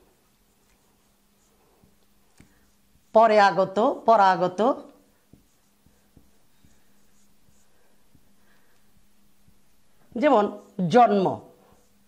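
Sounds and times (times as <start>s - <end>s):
marker writing on whiteboard: 0.0s - 12.0s
steady low hum: 0.0s - 12.0s.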